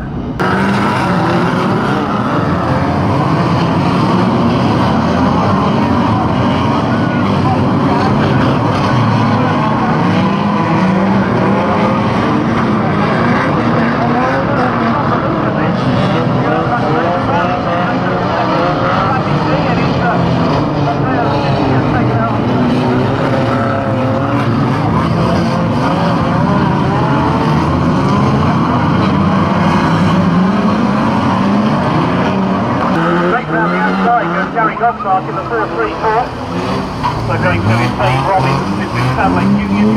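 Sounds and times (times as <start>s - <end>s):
racing car engines revving: 0.0s - 39.9s.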